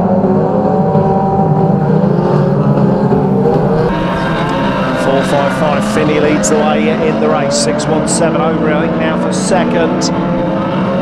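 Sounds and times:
racing car engines revving: 0:00.0 - 0:11.0.

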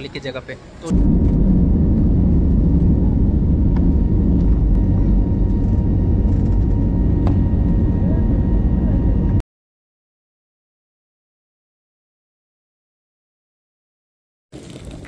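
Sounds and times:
faint engine whine: 0:00.6 - 0:09.4
jet engines rumbling in cabin: 0:00.7 - 0:09.4.

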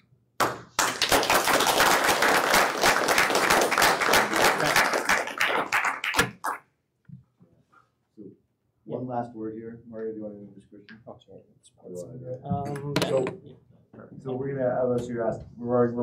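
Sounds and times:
audience applauding: 0:00.4 - 0:06.6.

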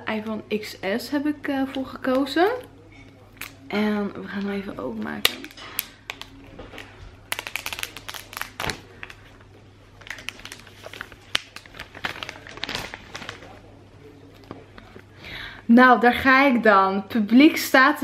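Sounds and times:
plastic shrink-wrap crinkling: 0:05.1 - 0:14.8.

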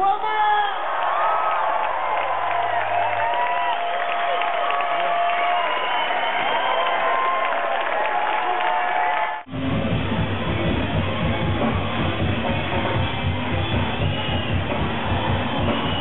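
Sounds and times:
crowd cheering and shouting: 0:00.0 - 0:16.0
live band music with heavy bass: 0:09.5 - 0:16.0.

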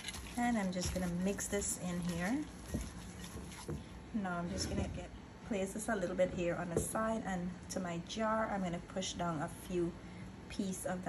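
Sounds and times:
wet handling of raw meat: 0:00.0 - 0:04.0.

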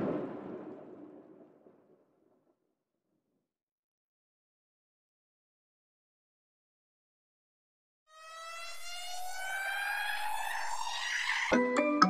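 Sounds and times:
rising synth tone: 0:08.2 - 0:11.7.

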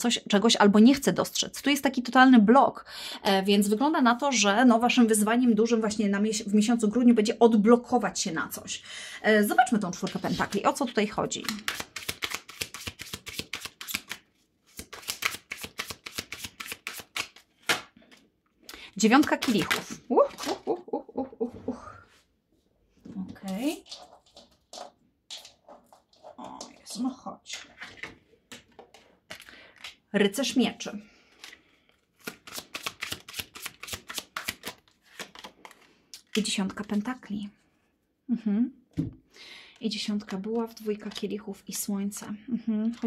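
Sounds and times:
cards being shuffled: 0:10.0 - 0:18.2, 0:19.1 - 0:20.6, 0:31.3 - 0:37.1.

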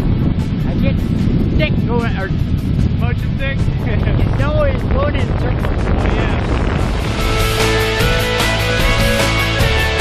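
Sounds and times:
wind buffeting microphone: 0:00.0 - 0:10.0
background music with beat: 0:07.0 - 0:10.0.

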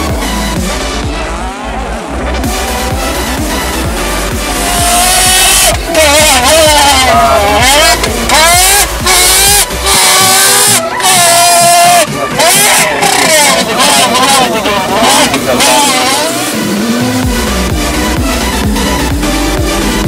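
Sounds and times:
man imitating racing car: 0:00.1 - 0:20.0.

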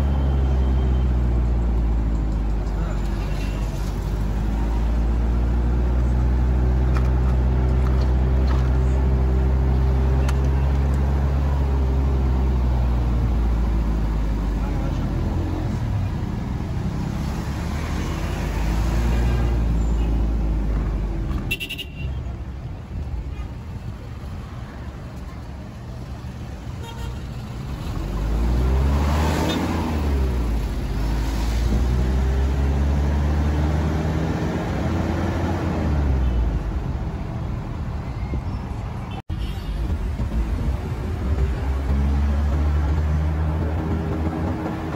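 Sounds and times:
car engines in traffic: 0:00.0 - 0:44.9.

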